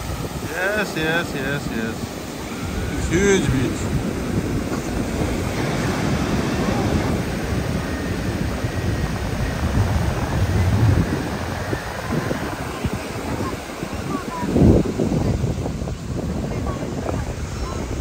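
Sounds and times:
ocean surf breaking on beach: 0:00.0 - 0:18.0
wind buffeting microphone: 0:00.0 - 0:18.0.

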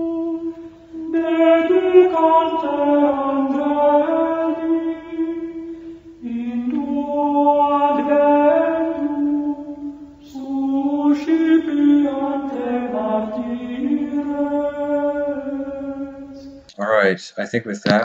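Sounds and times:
sung vocal chant: 0:00.0 - 0:17.1.

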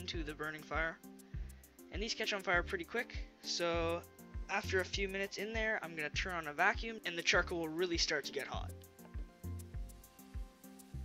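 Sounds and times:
background music with steady beat: 0:00.0 - 0:11.0.

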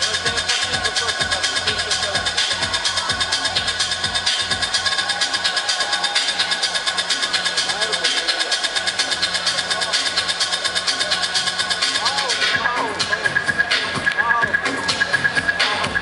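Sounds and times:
crowd chatter: 0:00.0 - 0:16.0
electronic dance music: 0:00.0 - 0:16.0.

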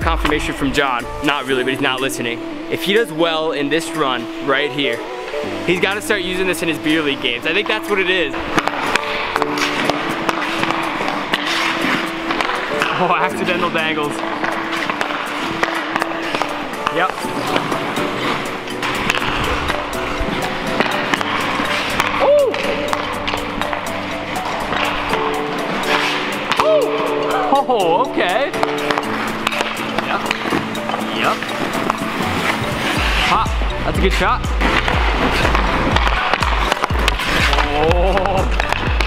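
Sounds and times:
background music with vocals: 0:00.0 - 0:39.0
ice skates scraping: 0:05.3 - 0:27.5, 0:28.5 - 0:39.0
hockey stick clicking on puck: 0:08.5 - 0:12.9, 0:14.2 - 0:26.7, 0:28.6 - 0:32.6, 0:34.7 - 0:39.0.

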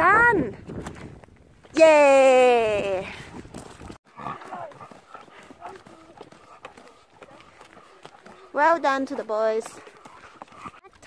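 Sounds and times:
footsteps on dirt path: 0:02.8 - 0:11.0
faint voice: 0:04.2 - 0:04.8.

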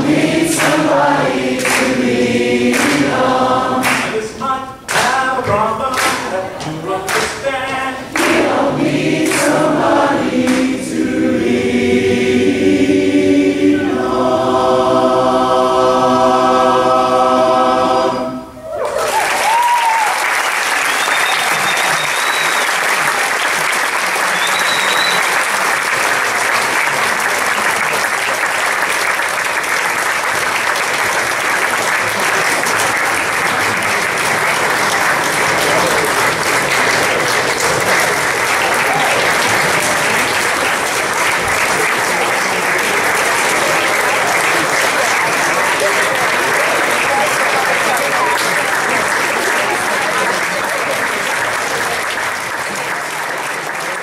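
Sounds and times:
audience applauding: 0:00.0 - 0:11.6, 0:18.7 - 0:54.0
short high whistles: 0:20.8 - 0:22.8, 0:24.3 - 0:25.4.

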